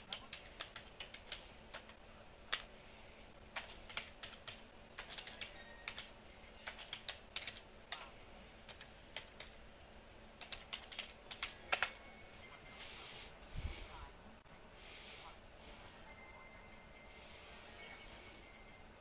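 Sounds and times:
computer keyboard typing: 0.0 - 2.7, 3.5 - 9.6, 10.4 - 12.0.

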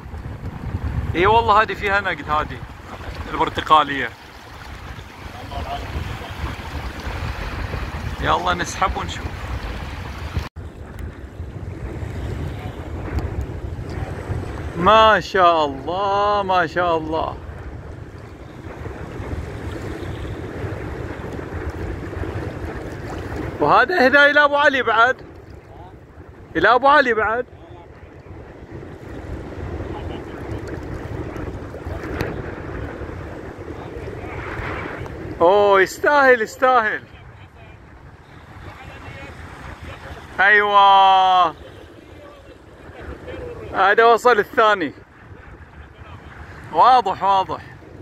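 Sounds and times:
small waves lapping: 0.0 - 15.8, 16.6 - 48.0
choppy sea water: 0.0 - 48.0
wind buffeting microphone: 0.0 - 48.0.

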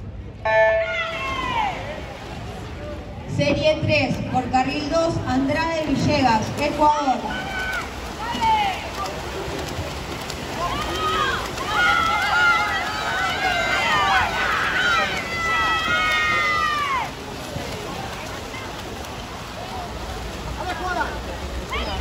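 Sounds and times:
spectators shouting and cheering: 0.5 - 2.2, 7.1 - 18.7.

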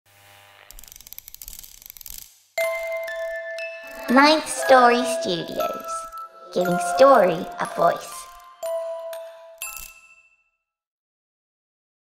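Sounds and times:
fast mechanical clicking: 0.8 - 2.4
bell-like chime: 2.6 - 10.5.

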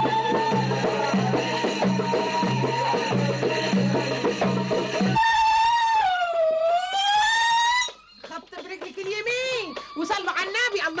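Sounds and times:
woman ululating: 5.2 - 8.0.

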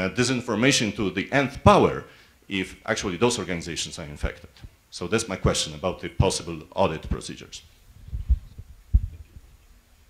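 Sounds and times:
microphone handling thumps: 7.9 - 9.6.

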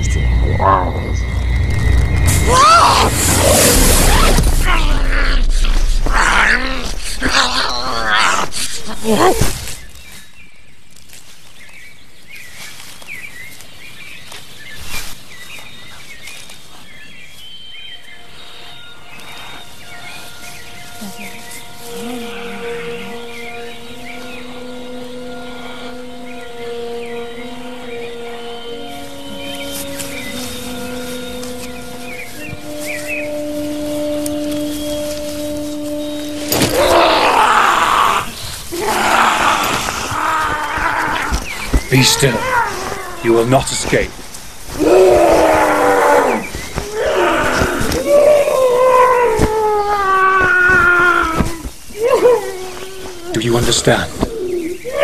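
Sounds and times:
loud outburst: 0.0 - 9.3, 36.7 - 41.3
soft film score: 0.0 - 9.6, 17.6 - 55.0
birdsong chirping: 0.0 - 55.0
quiet forest ambience: 0.0 - 55.0.

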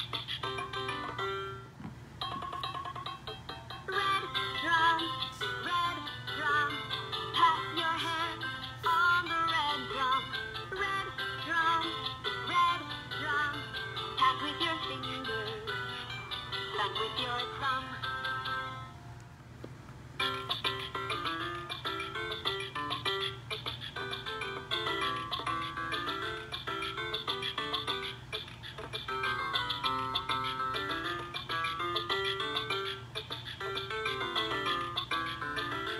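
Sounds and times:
electronic song from toy drum: 0.0 - 1.6, 2.2 - 18.7, 20.2 - 35.9.

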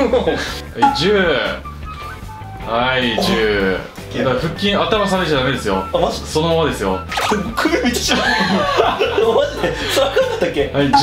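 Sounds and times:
men chuckling and laughing: 8.0 - 10.6.

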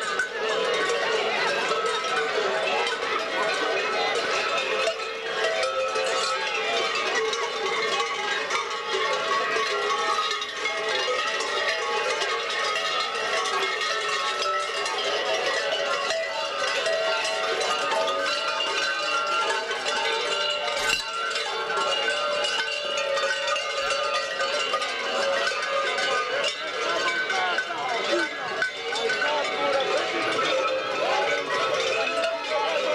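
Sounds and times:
large bells clanging: 0.1 - 32.9.

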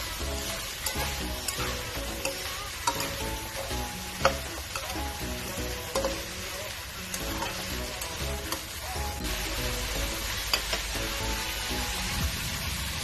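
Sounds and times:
spatula scraping a pan: 0.0 - 8.8
food sizzling in a frying pan: 0.0 - 13.0.

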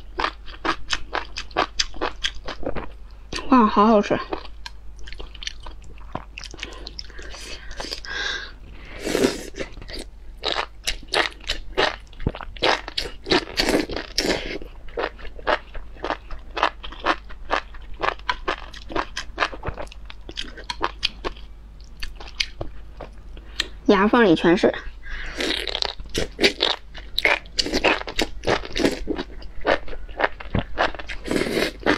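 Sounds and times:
crunchy chewing: 9.1 - 23.7, 25.3 - 31.9.

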